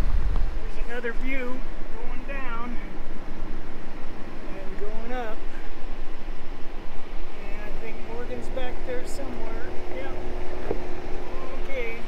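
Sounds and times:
truck engine rumble: 0.0 - 12.0
wavering whine: 0.0 - 12.0
wind noise: 0.0 - 12.0.

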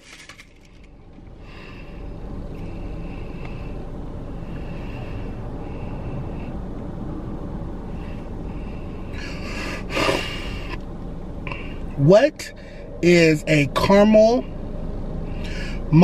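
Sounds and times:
car cabin low rumble: 0.1 - 16.0.

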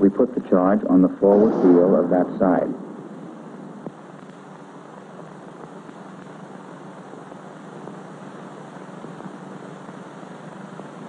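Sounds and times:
faint low hum: 0.0 - 11.0
film soundtrack hiss: 0.0 - 11.0.

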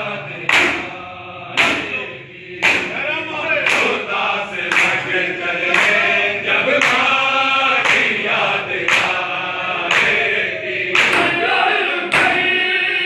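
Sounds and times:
men chanting a lament: 0.0 - 13.0
hands slapping bare chests: 0.5 - 1.0, 2.6 - 3.0, 3.7 - 4.0, 4.7 - 5.1, 5.7 - 6.0, 6.8 - 7.2, 7.8 - 8.2, 8.8 - 9.2, 9.8 - 10.2, 11.0 - 11.4.

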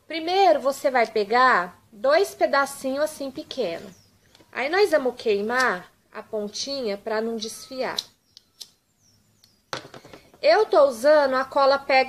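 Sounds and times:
lighter knocking on table: 9.7 - 10.2.

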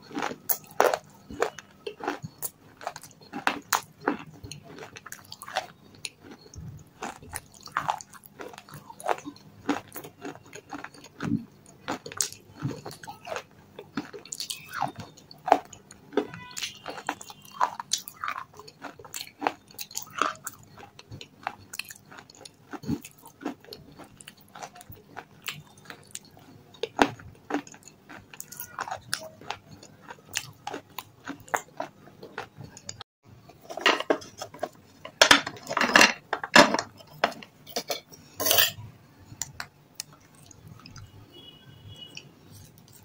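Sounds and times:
chewing stone chips crunching: 0.0 - 35.8, 42.5 - 43.0.

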